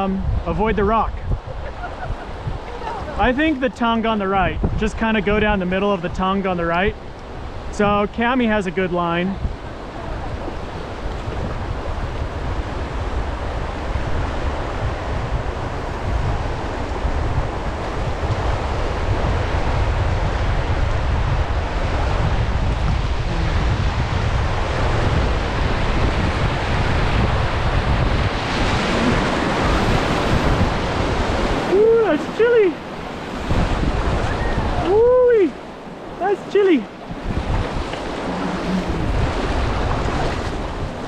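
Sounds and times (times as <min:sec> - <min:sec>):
wind buffeting microphone: 0:00.0 - 0:41.0
rushing whitewater: 0:01.9 - 0:12.2, 0:21.0 - 0:41.0.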